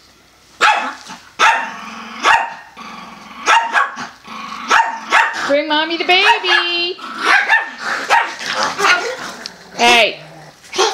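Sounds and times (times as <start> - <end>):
small dog barking sharply: 0.6 - 2.6, 3.5 - 4.1, 4.7 - 5.4, 7.3 - 8.4
dog growling: 1.6 - 5.6, 6.9 - 10.9.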